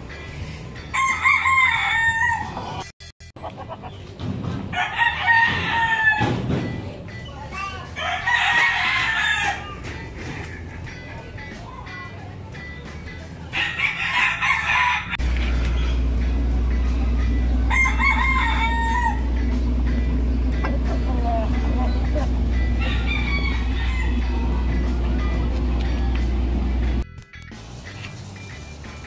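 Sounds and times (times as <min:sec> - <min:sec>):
rooster crowing: 0:00.9 - 0:02.6, 0:04.7 - 0:06.3, 0:08.0 - 0:09.8, 0:13.6 - 0:15.3, 0:17.7 - 0:19.4, 0:22.7 - 0:24.7
steady low hum: 0:15.2 - 0:27.0.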